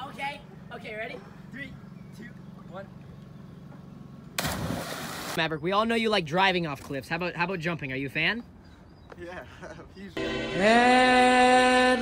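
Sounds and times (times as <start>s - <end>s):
loud splash of water: 4.4s - 5.4s.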